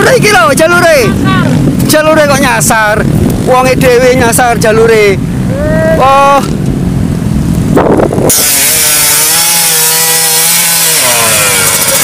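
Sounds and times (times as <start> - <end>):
dirt bike engine revving: 7.7 - 12.0.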